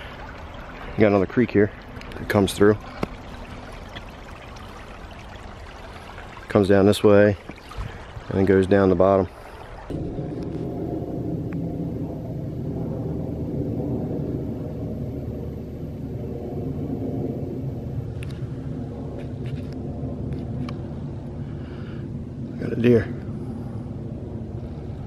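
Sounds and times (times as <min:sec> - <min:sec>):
distant highway traffic rumble: 0:00.0 - 0:25.0.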